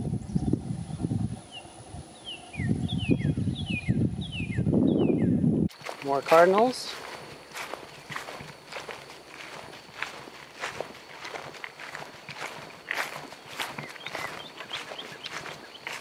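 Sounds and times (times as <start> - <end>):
footsteps walking outdoors: 5.7 - 16.0.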